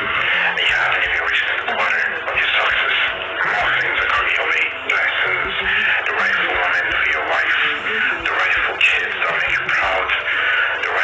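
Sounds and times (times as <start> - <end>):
faint music: 0.0 - 11.0
man speaking over phone line: 0.0 - 11.0.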